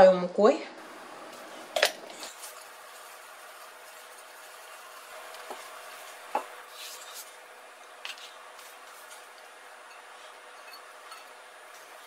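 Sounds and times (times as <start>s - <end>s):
faint room hum: 0.0s - 12.0s
kitchenware clinking on ceramic dish: 9.8s - 11.4s.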